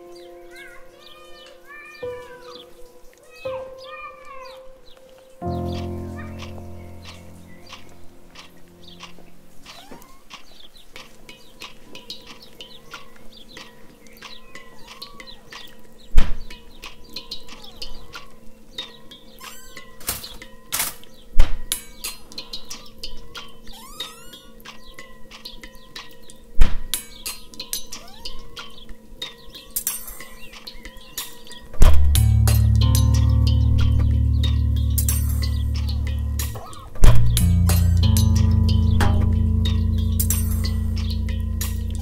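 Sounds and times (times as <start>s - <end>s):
steady low hum: 31.9s - 42.0s.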